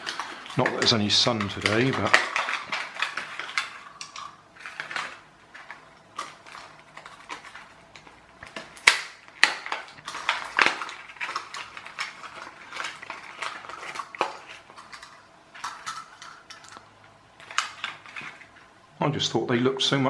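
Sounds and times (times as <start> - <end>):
plastic toys set on table: 0.0 - 18.9
plastic packaging crackling: 0.0 - 19.0.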